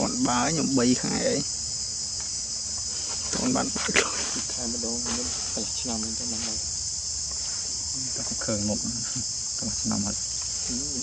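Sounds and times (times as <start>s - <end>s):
high-pitched insect drone: 0.0s - 11.0s.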